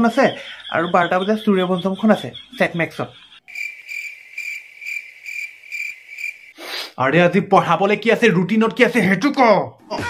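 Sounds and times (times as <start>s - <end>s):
cricket chirping: 0.0s - 6.6s.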